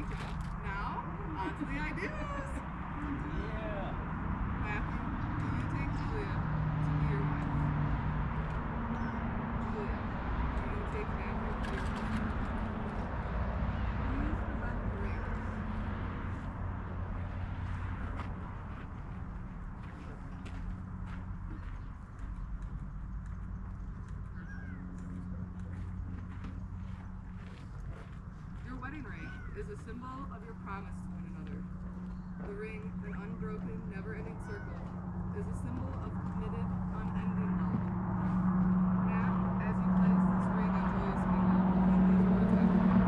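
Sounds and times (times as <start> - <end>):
steady low hum: 0.0 - 43.0.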